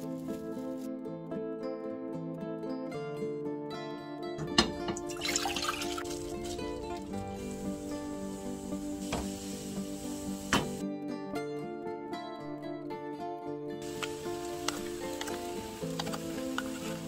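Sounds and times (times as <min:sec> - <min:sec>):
background music: 0:00.0 - 0:17.0
liquid pouring into a pot: 0:04.5 - 0:08.6.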